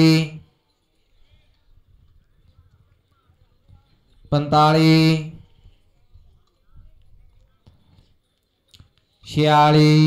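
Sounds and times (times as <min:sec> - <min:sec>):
hooves thudding on dirt: 0:01.2 - 0:04.4.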